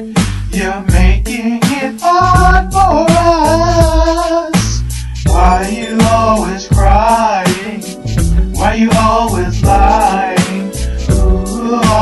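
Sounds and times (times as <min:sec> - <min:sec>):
drum and bass beat: 0:00.0 - 0:12.0.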